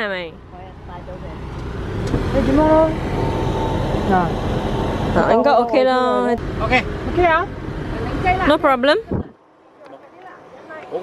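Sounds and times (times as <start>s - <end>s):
vehicle rumble: 0.0s - 11.0s
people talking: 4.1s - 4.4s, 5.2s - 11.0s.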